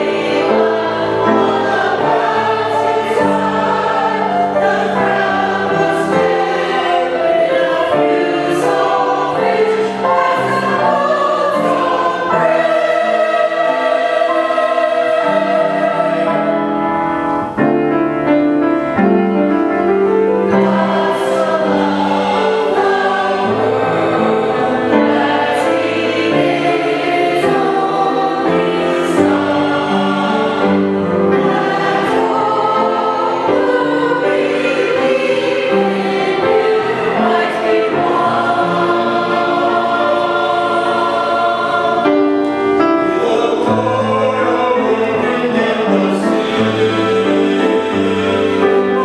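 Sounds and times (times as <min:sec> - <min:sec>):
mixed choir singing: 0:00.0 - 0:49.0.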